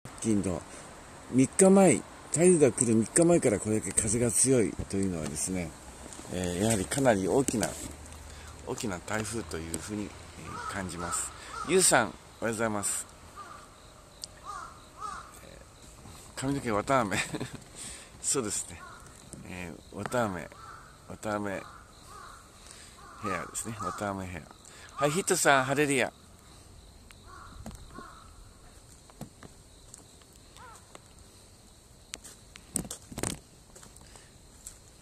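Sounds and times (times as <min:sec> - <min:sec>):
faint bird calls: 0:07.6 - 0:29.2, 0:29.8 - 0:31.5.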